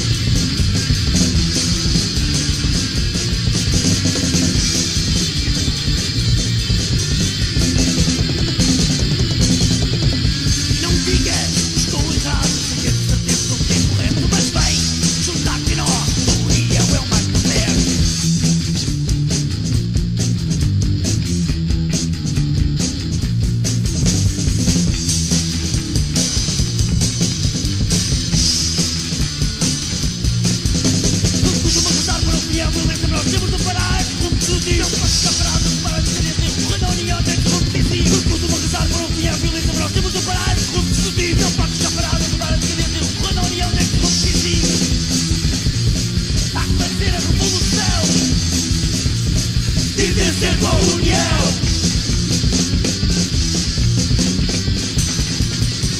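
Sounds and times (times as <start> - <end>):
bass guitar: 0.0 - 55.9
distorted electric guitar: 0.0 - 55.9
punk rock band playing: 0.0 - 55.9.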